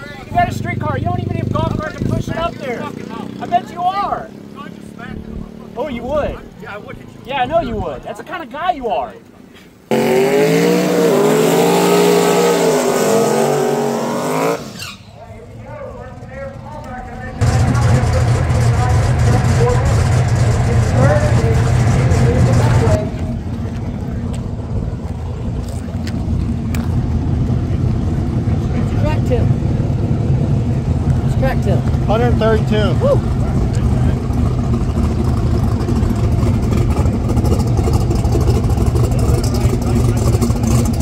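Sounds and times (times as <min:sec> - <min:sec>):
race car engine revving: 0:00.0 - 0:07.2, 0:09.9 - 0:41.0.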